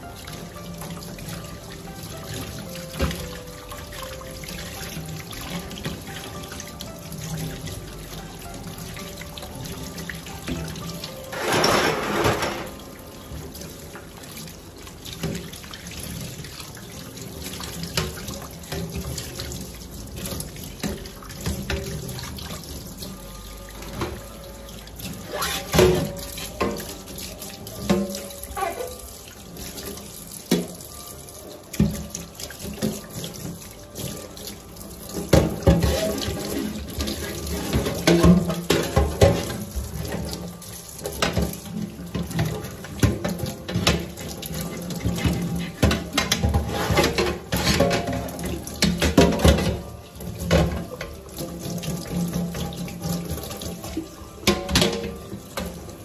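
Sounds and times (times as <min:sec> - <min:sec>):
scrubbing metal filters: 0:10.0 - 0:13.0, 0:35.1 - 0:56.0
tap running into metal sink: 0:10.5 - 0:12.9, 0:29.8 - 0:30.8, 0:35.2 - 0:56.0
metal parts clattering on sink: 0:11.3 - 0:12.8.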